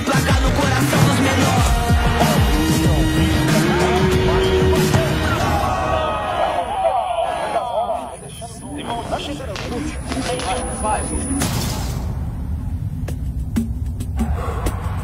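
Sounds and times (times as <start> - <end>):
low soundtrack music: 0.0 - 6.6.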